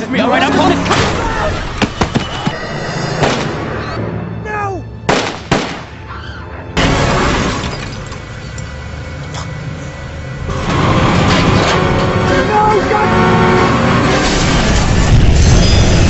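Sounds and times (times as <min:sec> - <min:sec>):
film music: 0:00.0 - 0:15.4.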